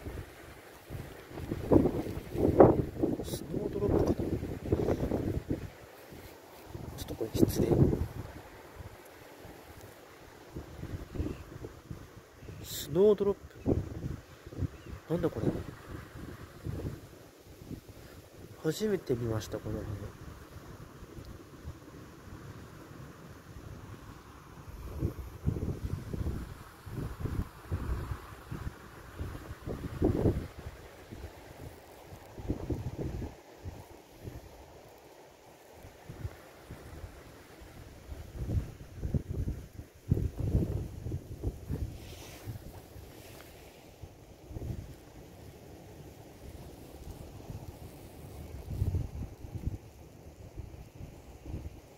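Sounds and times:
faint steady hiss: 0:00.0 - 0:51.9
wind buffeting microphone: 0:00.9 - 0:09.0, 0:10.5 - 0:12.7, 0:13.6 - 0:18.0, 0:24.6 - 0:34.6, 0:35.8 - 0:43.2, 0:44.0 - 0:45.1, 0:46.4 - 0:51.9.

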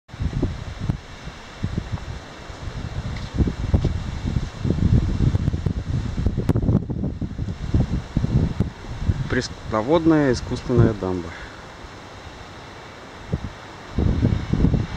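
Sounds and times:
wind buffeting microphone: 0:00.1 - 0:14.9.

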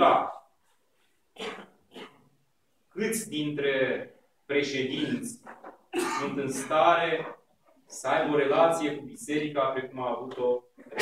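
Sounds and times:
man coughing: 0:06.0 - 0:06.8.

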